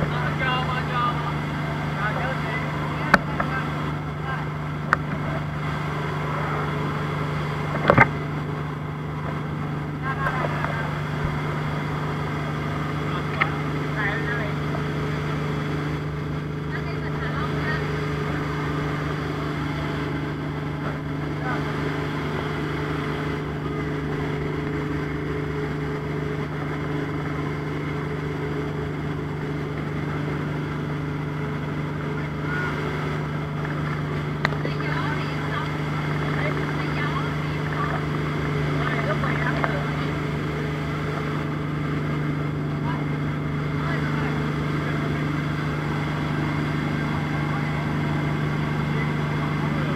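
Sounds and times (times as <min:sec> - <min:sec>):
speedboat engine running: 0:00.0 - 0:49.9
water noise: 0:00.0 - 0:49.9.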